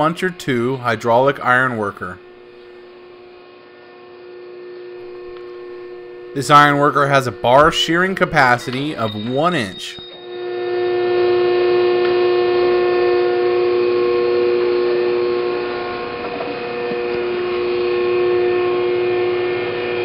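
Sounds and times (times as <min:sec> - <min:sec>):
hydraulic pump motor whine: 0:00.0 - 0:20.0.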